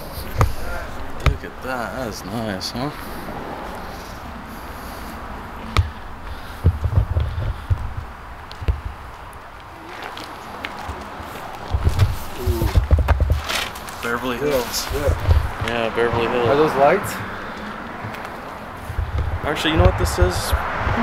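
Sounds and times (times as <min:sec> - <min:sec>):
handling thumps and rumbles: 0:00.0 - 0:21.0
outdoor background noise: 0:00.0 - 0:21.0.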